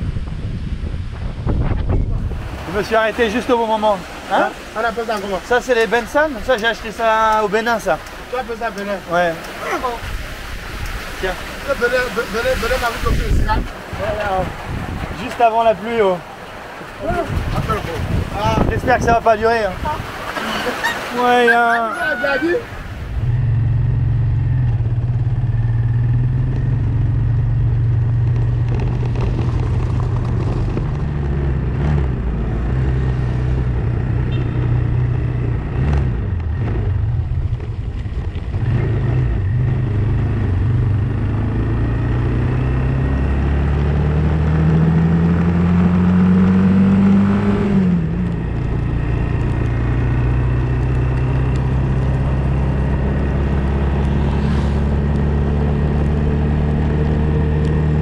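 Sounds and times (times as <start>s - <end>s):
motorcycle engine running: 23.2s - 42.9s.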